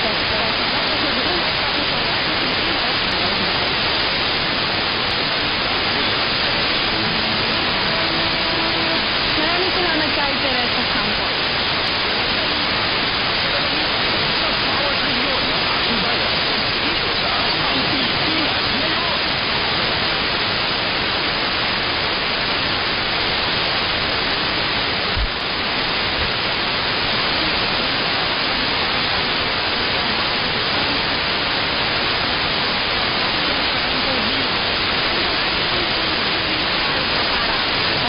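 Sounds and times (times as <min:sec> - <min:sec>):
faint radio broadcast: 0:00.0 - 0:38.0
radio static and hiss: 0:00.0 - 0:38.0.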